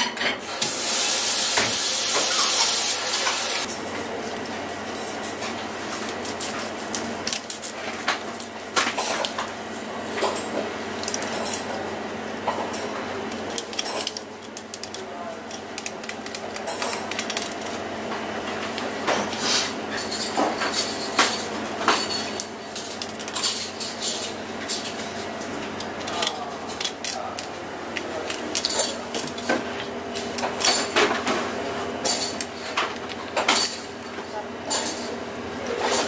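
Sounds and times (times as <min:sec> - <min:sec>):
water running into sink: 0:00.5 - 0:03.7.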